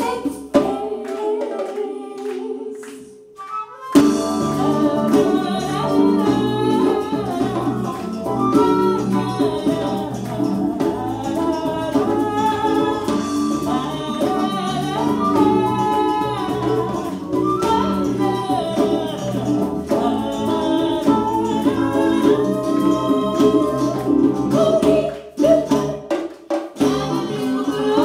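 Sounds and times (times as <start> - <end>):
woman singing: 0.0 - 28.0
live band playing latin music: 3.4 - 28.0.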